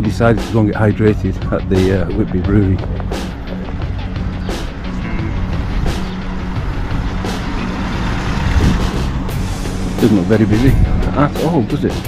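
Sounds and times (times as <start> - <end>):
background music: 0.0 - 12.0
small car passing by: 3.7 - 11.3.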